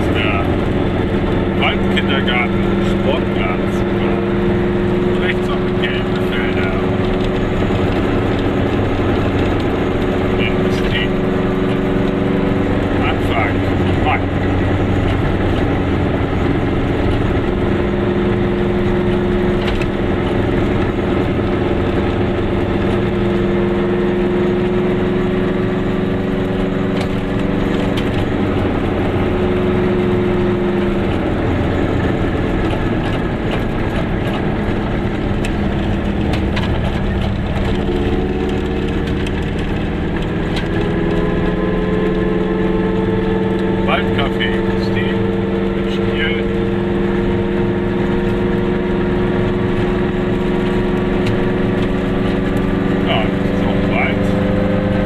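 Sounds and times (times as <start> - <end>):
car engine: 0.0 - 55.0.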